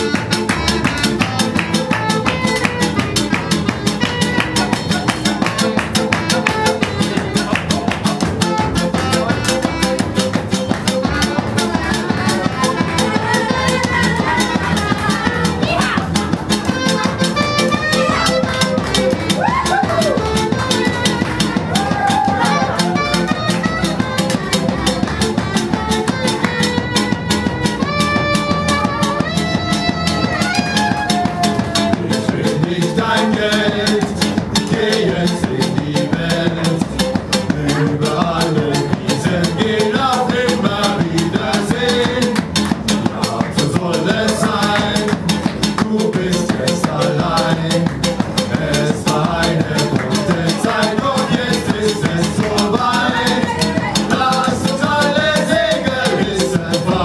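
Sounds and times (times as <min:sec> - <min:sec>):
hand drum beat: 0:00.0 - 0:57.0
strummed acoustic guitar: 0:00.0 - 0:57.0
upright double bass: 0:00.0 - 0:57.0
clarinet melody: 0:08.3 - 0:10.3, 0:16.7 - 0:31.8.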